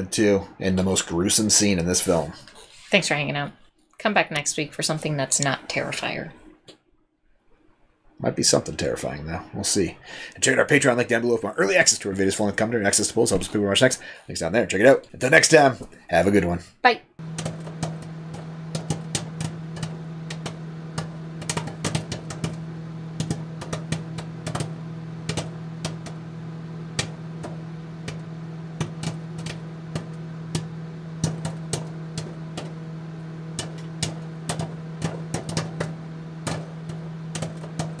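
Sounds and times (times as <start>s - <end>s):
low steady hum: 0.0s - 6.7s, 17.2s - 38.0s
sharp clicks and pops: 17.2s - 38.0s.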